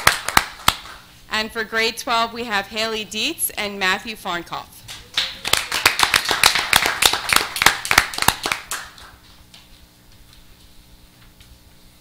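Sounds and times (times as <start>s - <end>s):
audience applause: 5.1s - 9.2s.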